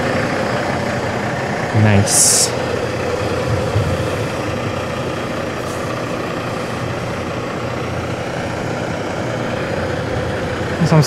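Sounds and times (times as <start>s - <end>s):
diesel truck engine idling: 0.0s - 11.0s
faint constant hum: 0.0s - 11.0s.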